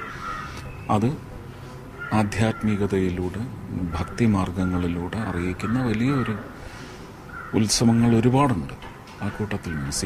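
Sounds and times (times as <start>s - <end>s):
crow cawing: 0.0s - 0.7s, 2.0s - 2.8s, 3.9s - 7.7s
man speaking: 2.1s - 6.4s.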